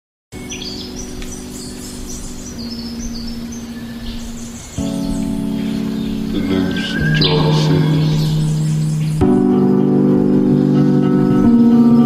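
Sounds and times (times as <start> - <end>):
birdsong chirping: 0.3 - 12.0
held music chord: 0.4 - 12.0.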